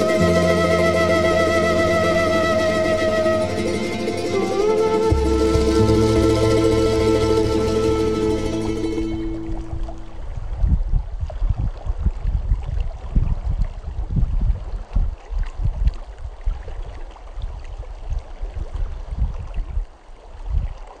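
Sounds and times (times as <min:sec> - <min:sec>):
stream rushing: 0:00.0 - 0:10.7
wind buffeting microphone: 0:00.0 - 0:21.0.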